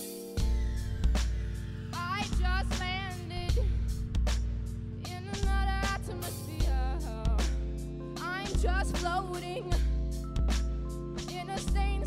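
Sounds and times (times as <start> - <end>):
drum kit beat: 0.0 - 12.0
deep sustained bass notes: 0.4 - 11.2
woman singing: 1.9 - 3.9, 5.0 - 10.2, 11.2 - 12.0.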